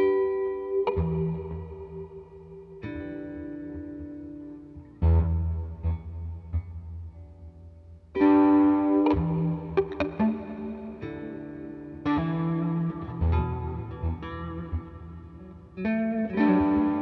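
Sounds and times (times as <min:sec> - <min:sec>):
distorted electric guitar: 0:00.0 - 0:17.0.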